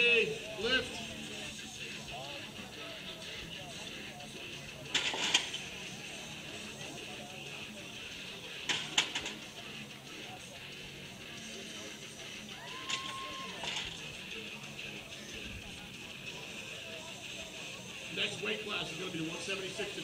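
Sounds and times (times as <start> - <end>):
spectators chattering: 0.0 - 20.0
loud shouting: 12.4 - 13.9.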